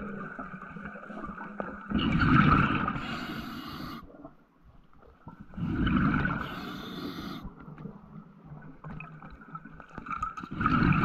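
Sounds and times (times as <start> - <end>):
bubbling: 0.0 - 4.0, 5.2 - 11.0
diver breathing underwater: 2.3 - 4.2, 5.5 - 7.6.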